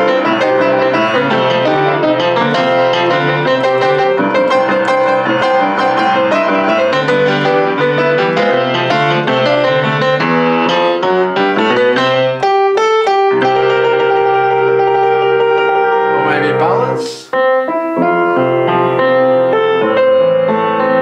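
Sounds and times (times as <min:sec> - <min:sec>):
rock and roll piano: 0:00.0 - 0:21.0.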